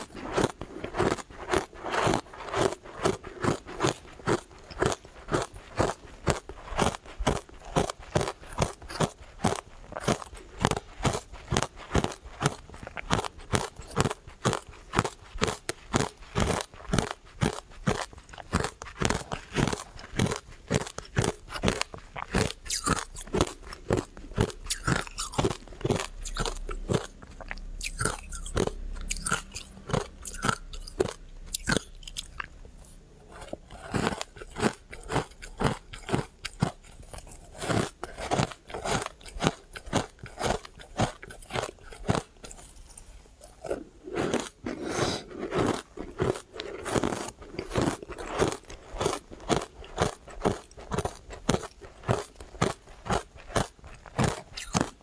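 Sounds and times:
ice being chewed crunching: 0.0s - 55.0s.

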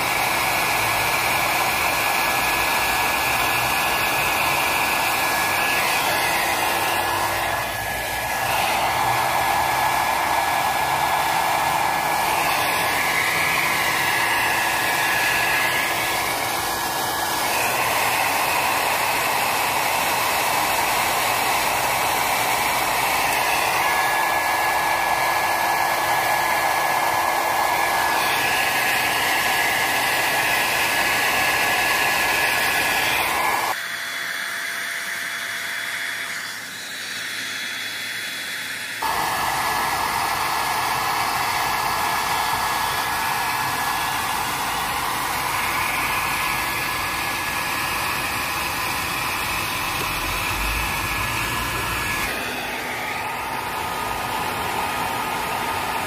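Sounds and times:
hair dryer blowing: 0.0s - 56.0s.

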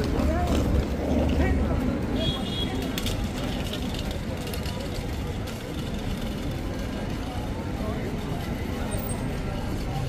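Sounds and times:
crowd chattering: 0.0s - 10.0s
low rumble of traffic: 0.0s - 10.0s.

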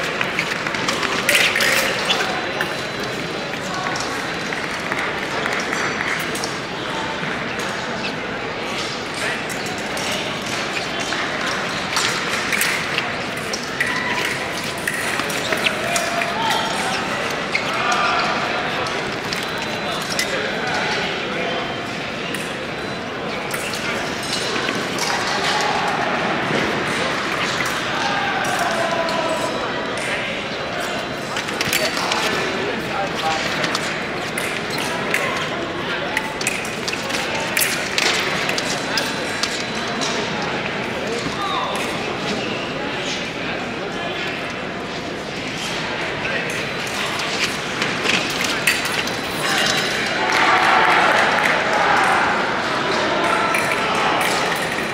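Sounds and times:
fencing blades clacking: 0.0s - 6.7s, 8.8s - 20.6s, 30.8s - 40.4s, 46.4s - 54.9s
babble of many voices: 0.0s - 54.9s.

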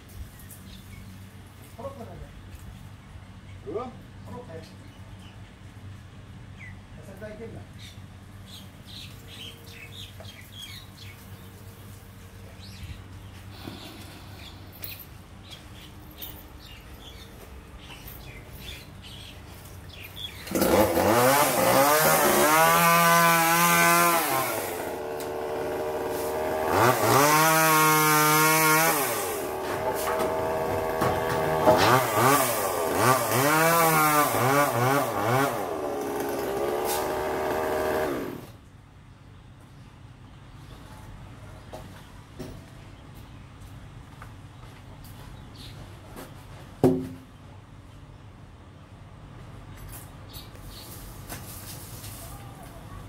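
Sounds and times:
chainsaw revving: 20.3s - 38.6s.

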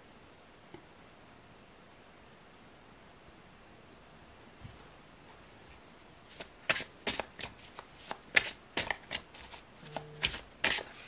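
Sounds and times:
cards shuffled and snapping: 6.3s - 11.0s.

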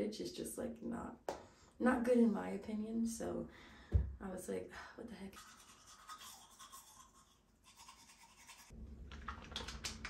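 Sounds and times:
toothbrush scrubbing teeth: 5.4s - 10.0s.

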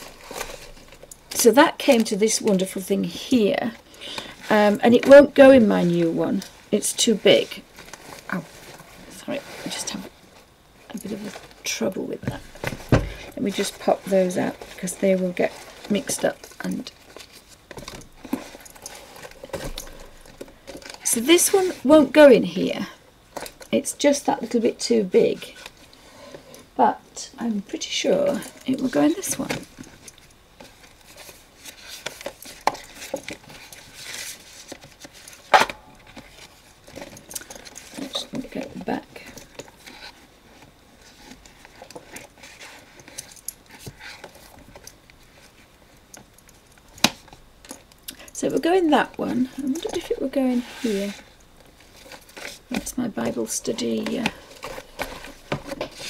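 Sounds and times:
book and plastic folders shuffled: 0.0s - 56.0s
craft supplies tapping and rustling: 12.2s - 21.7s, 51.8s - 56.0s.

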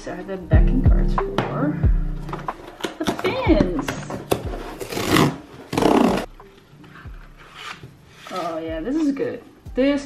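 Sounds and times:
cardboard rustling: 2.4s - 9.2s
cardboard box tearing: 4.3s - 6.3s.

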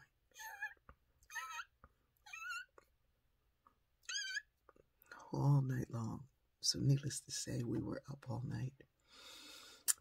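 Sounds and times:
person making high-pitched squeaks: 0.3s - 2.8s, 4.0s - 4.5s.

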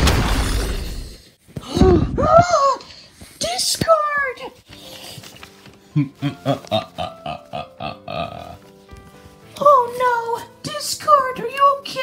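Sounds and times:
background music steady tones: 3.4s - 12.0s.

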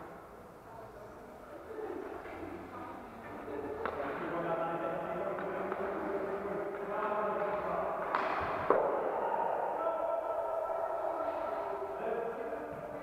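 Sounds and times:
distant voices murmuring: 0.7s - 13.0s
hockey stick striking puck: 6.7s - 9.0s.

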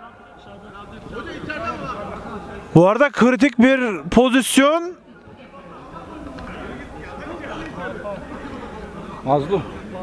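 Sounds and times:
low steady background noise: 0.0s - 10.0s.

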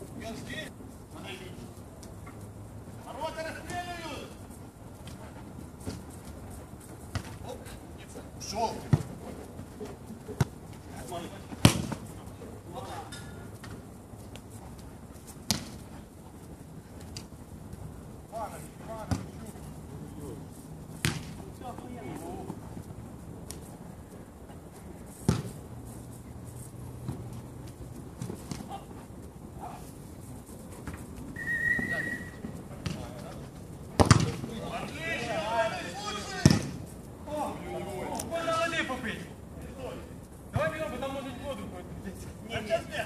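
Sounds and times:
football kick thud: 11.6s - 12.0s, 21.0s - 21.3s, 25.3s - 25.6s, 34.0s - 34.4s, 36.4s - 36.8s
players shouting: 34.4s - 39.3s.

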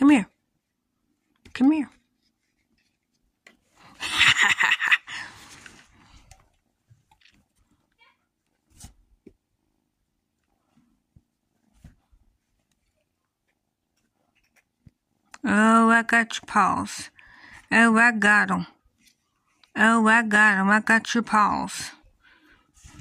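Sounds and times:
faint clicks and rustles: 1.1s - 4.0s, 10.3s - 15.3s.

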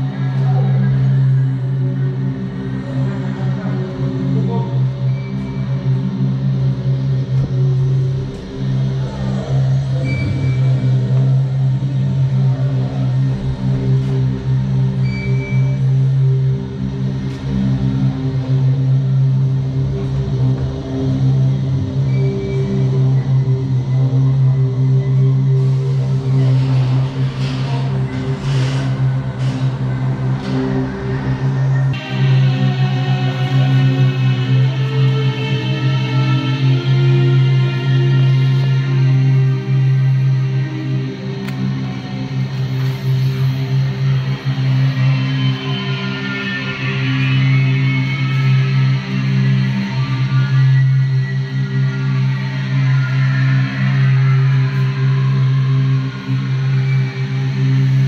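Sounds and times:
dark ambient horror music: 0.0s - 58.0s.

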